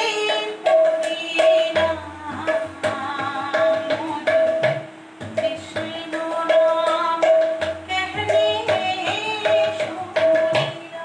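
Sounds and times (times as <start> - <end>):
hand-played barrel drum: 0.0 - 11.0
woman singing devotional song: 0.0 - 11.0.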